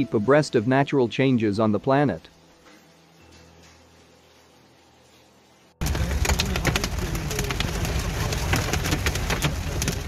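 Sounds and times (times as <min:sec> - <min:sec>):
heavy rain on car windshield: 0:05.8 - 0:10.0
low rumble of car driving: 0:05.8 - 0:10.0.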